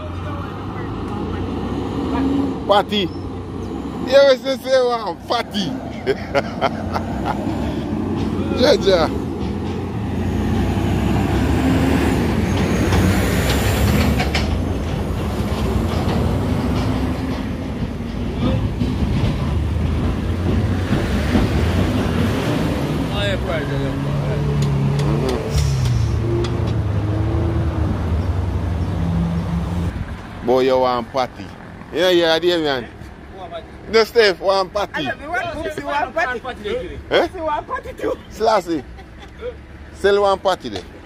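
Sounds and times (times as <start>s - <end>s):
voices talking: 0.0s - 13.2s, 22.1s - 27.1s, 30.4s - 41.0s
minibus engine rumbling: 0.0s - 41.0s.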